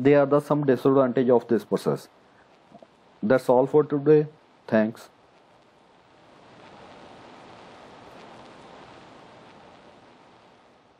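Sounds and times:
faint steady hiss: 0.0s - 10.9s.

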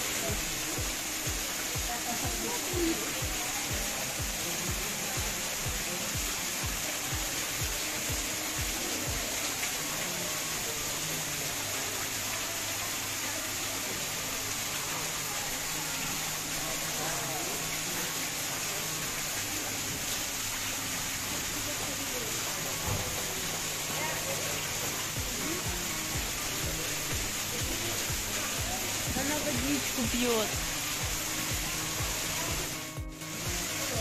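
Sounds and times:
running water rushing: 0.0s - 34.0s
low regular pulsing: 25.2s - 34.0s.

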